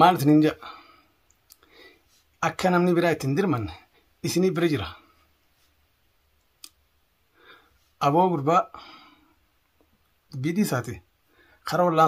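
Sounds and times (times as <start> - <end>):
faint breath: 0.6 - 2.3, 7.3 - 8.0, 8.7 - 9.4, 11.2 - 11.6.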